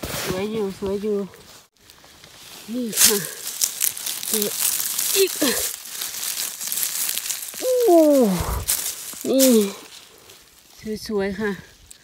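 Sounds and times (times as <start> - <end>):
dry leaves crackling and rustling: 0.9 - 12.0
woman saying ooh: 7.6 - 8.5.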